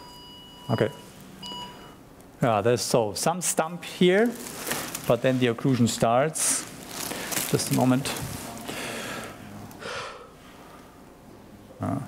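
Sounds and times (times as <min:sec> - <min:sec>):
person breathing close to microphone: 0:08.5 - 0:11.0.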